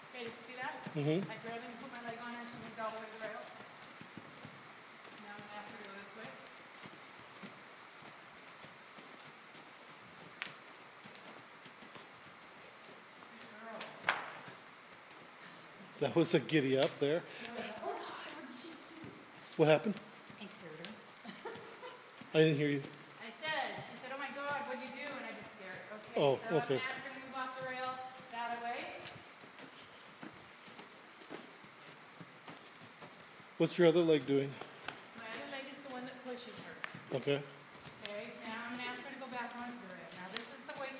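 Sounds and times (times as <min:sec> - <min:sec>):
horse hoofbeats on dirt: 0:00.0 - 0:40.9.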